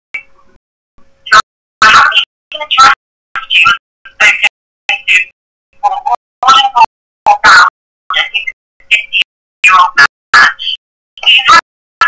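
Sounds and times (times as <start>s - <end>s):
person's voice on radio: 1.8s - 11.6s.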